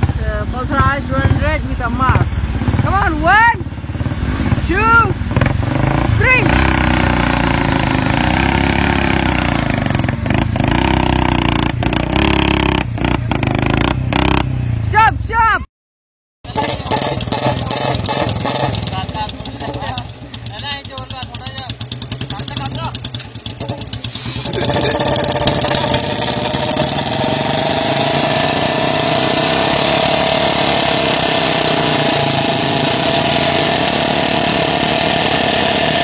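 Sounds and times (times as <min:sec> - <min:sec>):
motorcycle engines revving: 0:00.0 - 0:15.1, 0:16.5 - 0:36.0.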